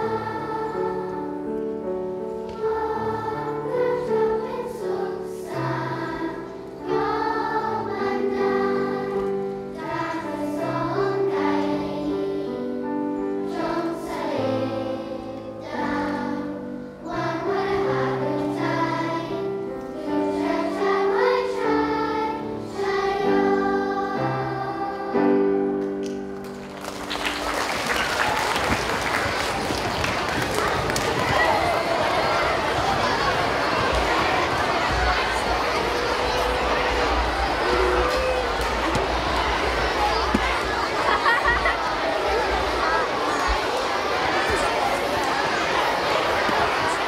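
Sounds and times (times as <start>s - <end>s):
children's choir singing: 0.0s - 47.0s.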